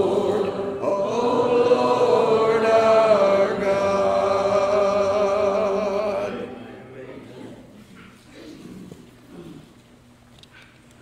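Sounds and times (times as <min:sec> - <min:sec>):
congregation singing a hymn: 0:00.0 - 0:07.0.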